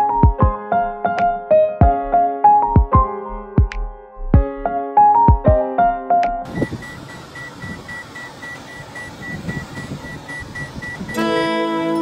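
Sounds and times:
low rumble inside a car: 6.5 - 11.2
short high electronic beeps: 6.5 - 11.2.

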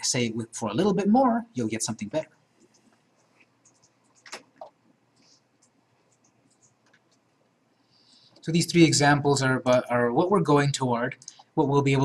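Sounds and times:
faint high-pitched scratches and ticks: 2.6 - 7.3.

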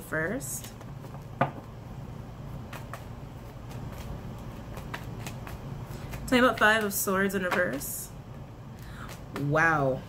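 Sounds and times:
cards being shuffled: 2.6 - 8.0, 9.0 - 9.6.

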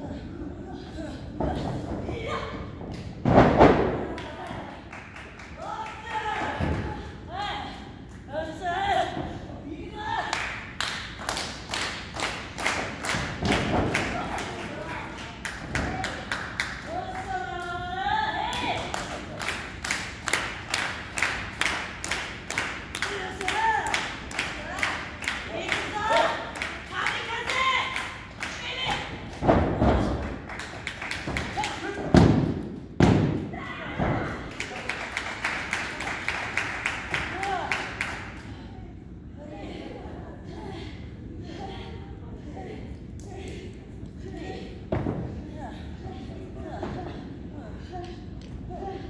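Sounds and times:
crowd clapping in unison: 34.4 - 38.3.

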